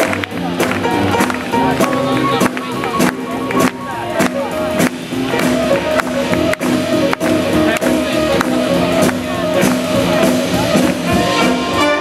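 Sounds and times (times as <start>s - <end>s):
big band playing swing: 0.0s - 12.0s
grand piano: 0.0s - 12.0s
steady drum beat: 0.0s - 12.0s
upright double bass: 0.0s - 12.0s.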